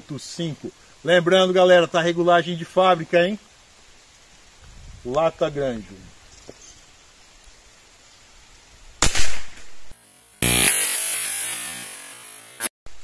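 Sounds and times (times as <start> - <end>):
air rifle shot: 9.0 - 9.9.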